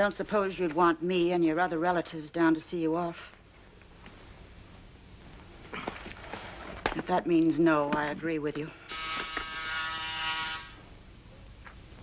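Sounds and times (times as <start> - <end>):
electric door buzzer: 8.9 - 10.8.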